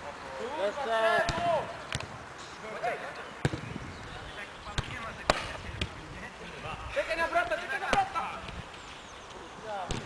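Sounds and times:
football kicked thuds: 1.2s - 2.2s, 3.4s - 3.8s.

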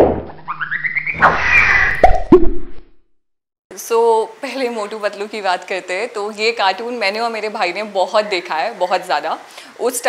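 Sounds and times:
cartoon swoosh: 0.3s - 2.9s
speech: 3.7s - 10.0s.

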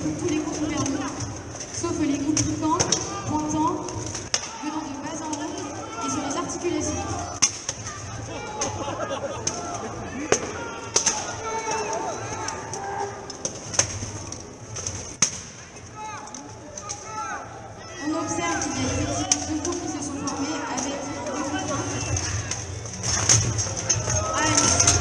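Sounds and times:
crowd voices: 0.0s - 25.0s.

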